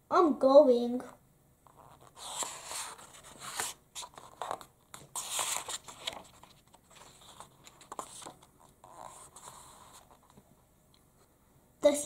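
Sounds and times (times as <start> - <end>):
paper page rustling: 1.7 - 10.4.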